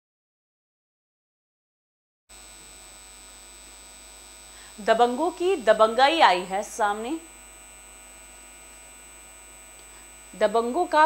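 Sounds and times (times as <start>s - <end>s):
electrical mains hum: 2.3s - 11.0s.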